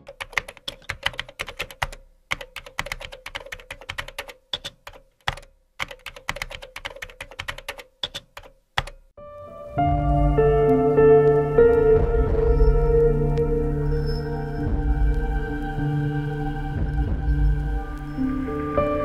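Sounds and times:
keyboard typing clicks: 0:00.0 - 0:09.0
faint music: 0:09.2 - 0:19.0.

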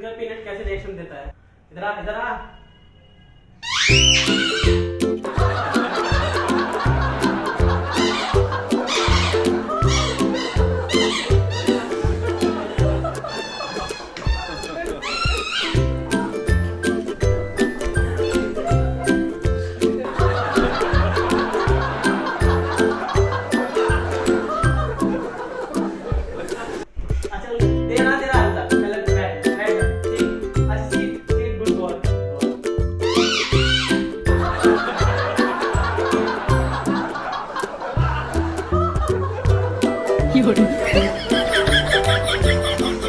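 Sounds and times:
squeaky toy squeak: 0:03.6 - 0:05.0, 0:08.0 - 0:11.9, 0:13.3 - 0:16.0, 0:18.2 - 0:18.6, 0:33.0 - 0:34.1
background music with steady beat: 0:04.3 - 0:43.0.

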